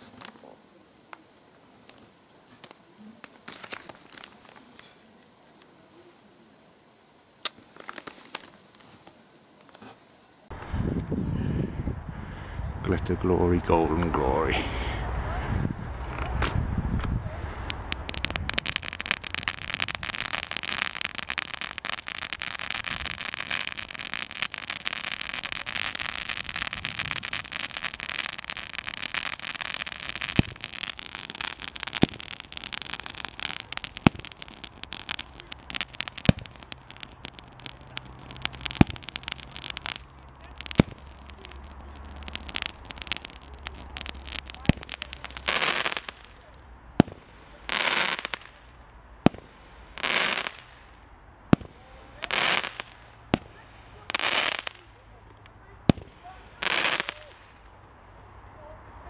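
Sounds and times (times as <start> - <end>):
fireworks crackling fizz: 0.0 - 0.3, 2.6 - 4.9, 7.4 - 9.0, 12.8 - 57.9
fireworks sharp cracks: 16.0 - 57.9.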